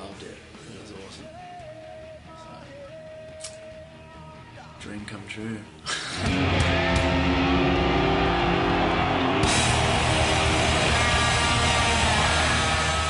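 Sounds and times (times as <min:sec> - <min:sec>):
heavy metal music: 0:06.2 - 0:13.0.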